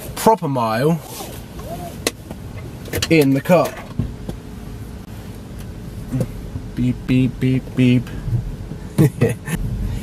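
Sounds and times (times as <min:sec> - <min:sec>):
faint steady hum: 0:00.0 - 0:10.0
tyres rumbling on road: 0:00.0 - 0:10.0.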